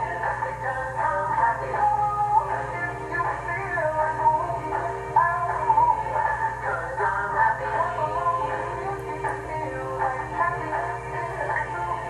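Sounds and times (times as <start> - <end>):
singing with music through small speaker: 0.0 - 12.0
steady low hum: 0.0 - 12.0.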